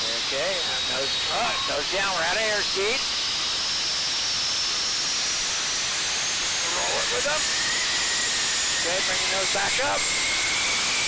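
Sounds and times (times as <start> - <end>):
airflow and engine in cockpit: 0.0 - 11.0
faint high whine rising: 0.0 - 11.0.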